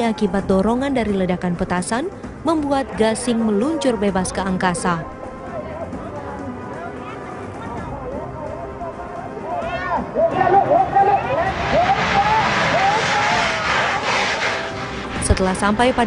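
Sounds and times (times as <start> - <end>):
crowd shouting and cheering: 9.0 - 14.8
firework loud rushing hiss: 11.3 - 16.0.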